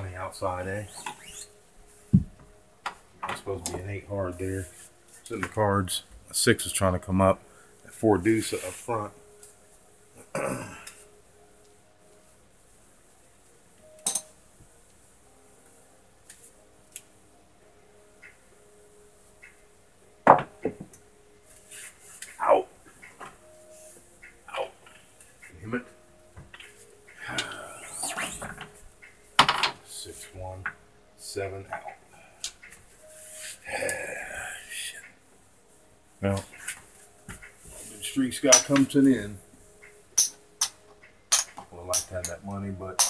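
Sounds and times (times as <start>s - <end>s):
dice and chips clicking: 40.2s - 42.4s.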